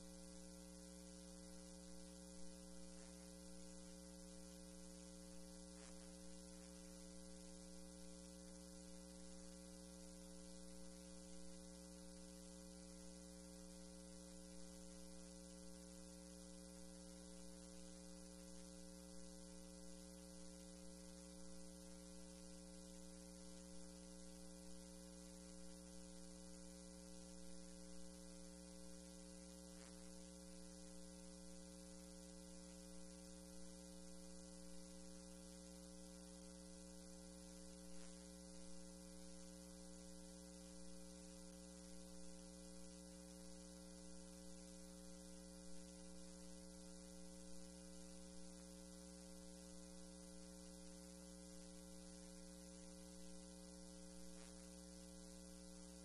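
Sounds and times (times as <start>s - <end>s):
electrical hum: 0.0s - 56.0s.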